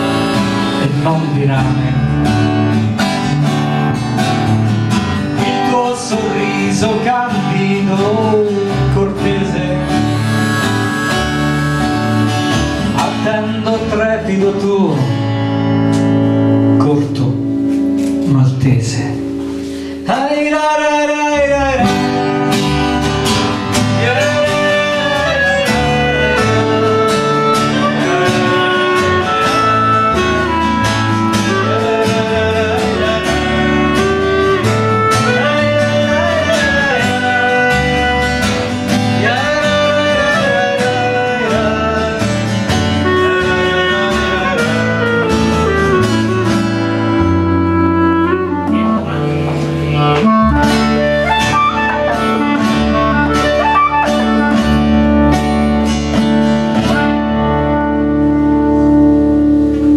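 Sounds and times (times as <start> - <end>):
woodwind melody: 0.0 - 4.6, 5.2 - 14.4, 20.1 - 59.9
acoustic guitars strumming: 0.0 - 59.9.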